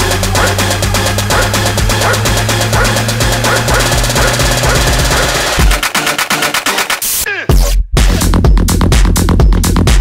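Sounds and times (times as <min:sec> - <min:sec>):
electronic dance music: 0:00.0 - 0:10.0
steady beat: 0:00.0 - 0:10.0.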